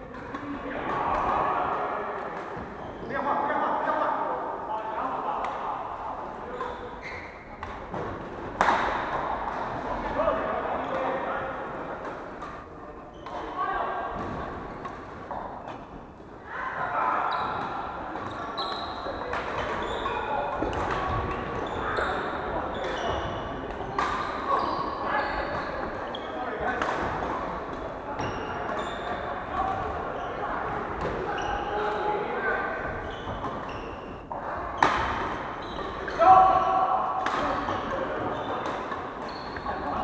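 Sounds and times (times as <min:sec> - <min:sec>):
racket hitting shuttlecock: 0:07.6 - 0:09.6, 0:23.7 - 0:24.4, 0:34.8 - 0:36.2, 0:37.2 - 0:38.0
shoes squeaking on wooden floor: 0:17.2 - 0:20.7, 0:32.8 - 0:34.5, 0:35.5 - 0:36.2, 0:38.1 - 0:40.0.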